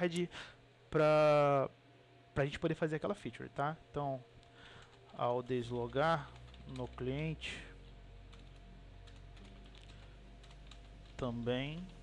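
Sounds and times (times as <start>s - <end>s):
low steady hum: 0.0s - 12.0s
computer keyboard typing: 6.1s - 7.2s, 8.3s - 12.0s.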